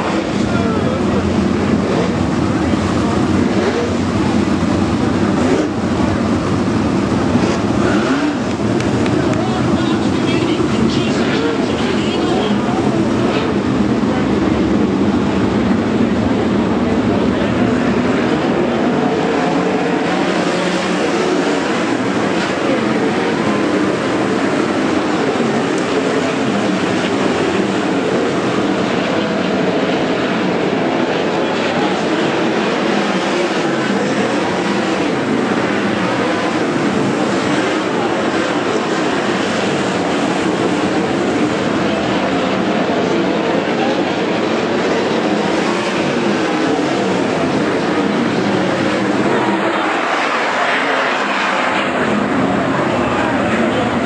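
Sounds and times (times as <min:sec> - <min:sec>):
race car engines roaring: 0:00.0 - 0:54.0.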